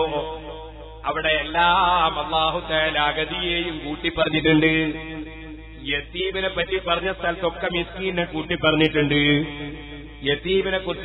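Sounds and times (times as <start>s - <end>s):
man chanting devotional recitation: 0.0s - 11.0s.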